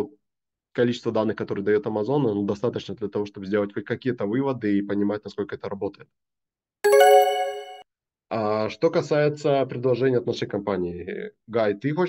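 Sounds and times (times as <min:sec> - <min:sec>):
two-note electronic chime: 0:06.9 - 0:07.8.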